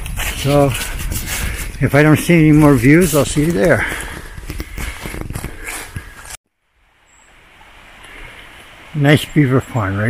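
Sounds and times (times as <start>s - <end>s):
footsteps crunching through dry leaves: 0.0s - 6.4s
faint steady hiss: 6.6s - 10.0s.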